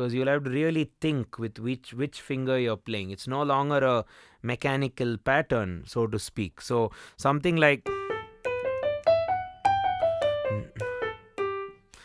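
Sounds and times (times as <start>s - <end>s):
digital piano playing a scale: 7.8s - 12.0s.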